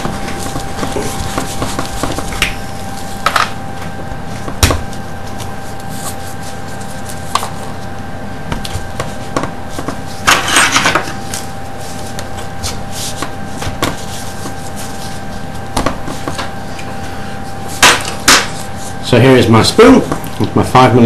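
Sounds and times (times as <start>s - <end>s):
rustling scrape: 5.2s - 7.9s, 14.0s - 16.2s.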